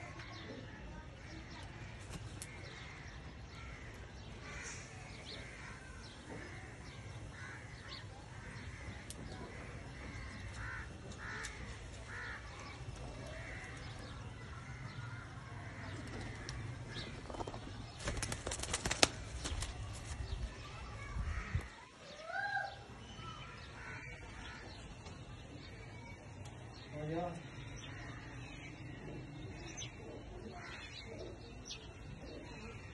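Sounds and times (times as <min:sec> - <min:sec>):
pigeon wings flapping: 0:17.3 - 0:20.1.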